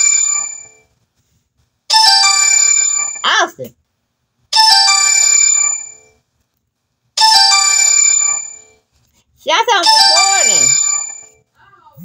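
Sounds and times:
electronic ringtone chime: 0.0 - 0.9, 1.9 - 3.2, 4.6 - 6.2, 7.2 - 8.8, 9.8 - 11.4.

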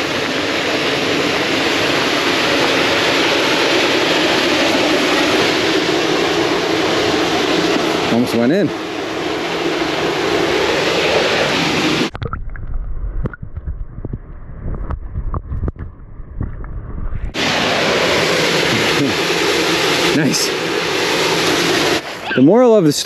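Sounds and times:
wind and water hiss: 0.0 - 23.0
muffled underwater rumble: 12.0 - 19.2.

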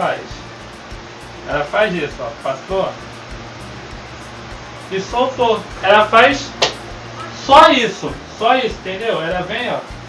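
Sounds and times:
fan humming: 0.0 - 10.0.

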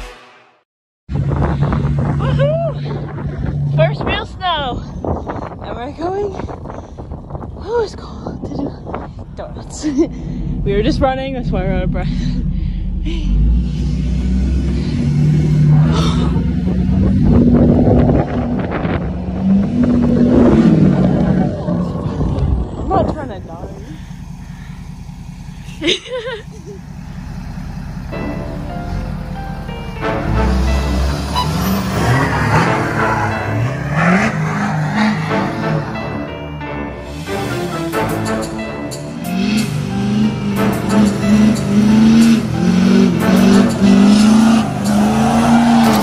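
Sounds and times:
pickup truck engine revving: 12.9 - 36.3, 37.0 - 46.0
music: 28.2 - 31.7, 35.2 - 45.1.

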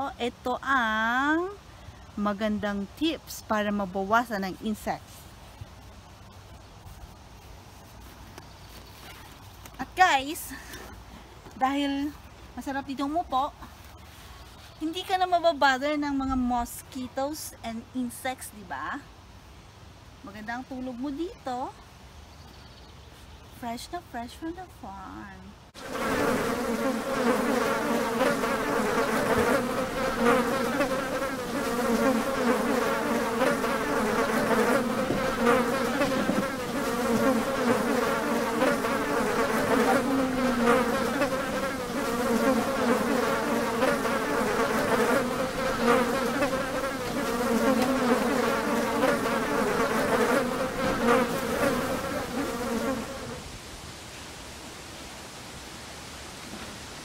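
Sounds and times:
flying insects buzzing: 25.7 - 53.5.

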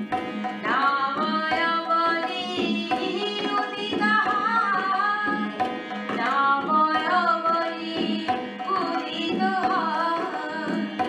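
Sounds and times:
light tabla strokes: 0.0 - 11.0
woman singing devotional song: 0.6 - 11.0.

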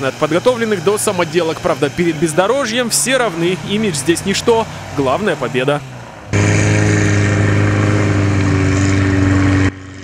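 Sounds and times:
off-road vehicle engine revving high: 0.0 - 10.0.

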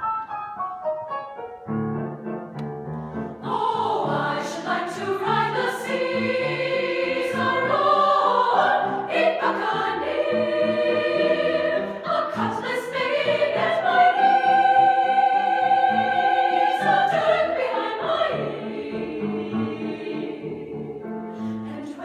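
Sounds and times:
piano accompaniment: 0.0 - 22.0
women's choir singing: 3.3 - 22.0.

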